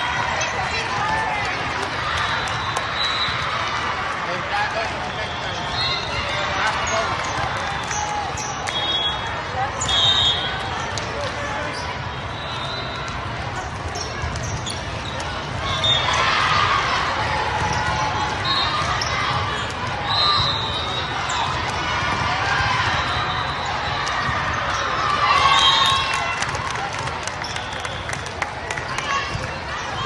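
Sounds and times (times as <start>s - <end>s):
sneakers squeaking on court: 12.8s - 16.2s.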